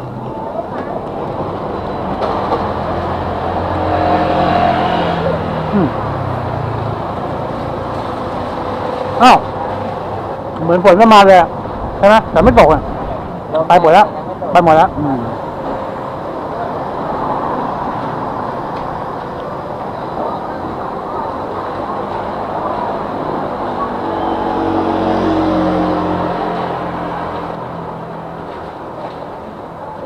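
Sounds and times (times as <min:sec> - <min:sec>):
street traffic noise: 0:00.0 - 0:30.0
car engine passing: 0:02.3 - 0:10.2, 0:20.0 - 0:28.8.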